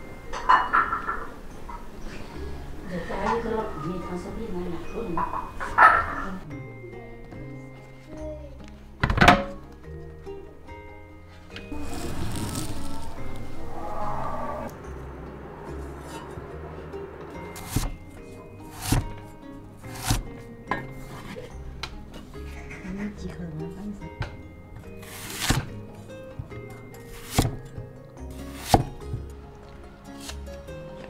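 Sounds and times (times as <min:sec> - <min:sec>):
background music: 0:00.0 - 0:31.0
metal baking tray clanking: 0:00.3 - 0:01.3, 0:05.1 - 0:06.4
scraping rustle: 0:11.7 - 0:14.7.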